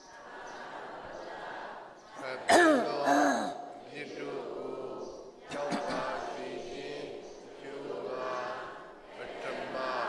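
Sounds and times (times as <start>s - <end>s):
man clearing his throat: 2.5s - 3.6s.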